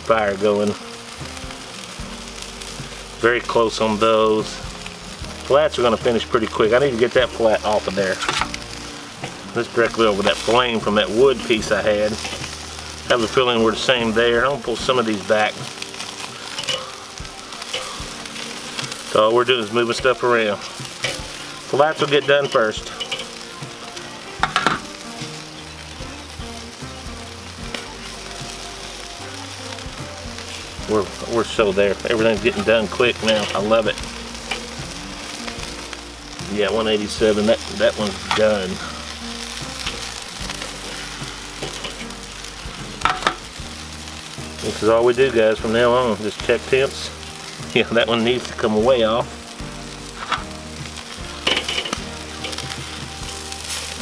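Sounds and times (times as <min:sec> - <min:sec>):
chicken wings sizzling on grill: 0:00.0 - 0:54.0
metal tongs moving food: 0:00.0 - 0:54.0.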